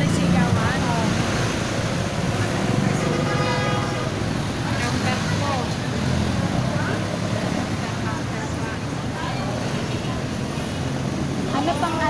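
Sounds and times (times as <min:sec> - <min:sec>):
faint voices: 0:00.0 - 0:12.0
traffic engines rumbling: 0:00.0 - 0:12.0.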